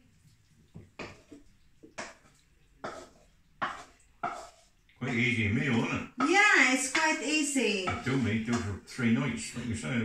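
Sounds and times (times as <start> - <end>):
utensil scraping and knocking on pan: 0.8 - 5.2, 6.1 - 9.9.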